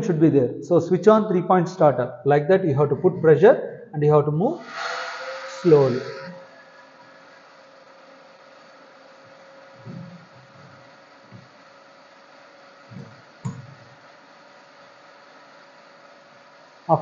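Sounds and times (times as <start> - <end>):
electric motor hum: 2.8 - 17.0.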